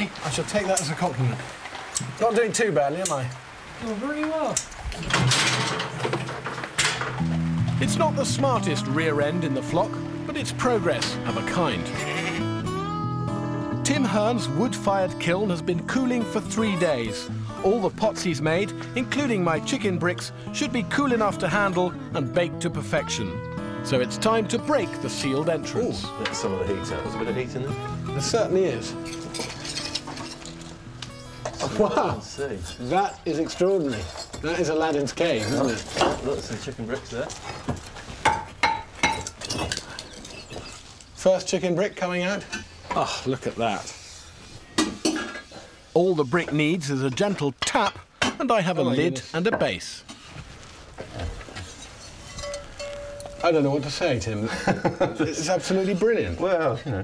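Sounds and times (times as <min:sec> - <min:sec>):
fired clay clinking and scraping: 0:00.0 - 0:12.0, 0:13.8 - 0:21.9, 0:23.9 - 0:26.8, 0:28.6 - 0:56.1.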